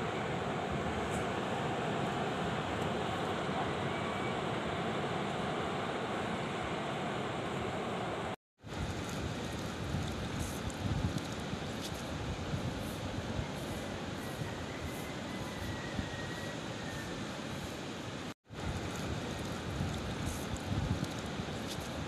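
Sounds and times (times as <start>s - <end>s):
wind on microphone: 8.7s - 17.7s, 18.6s - 22.0s.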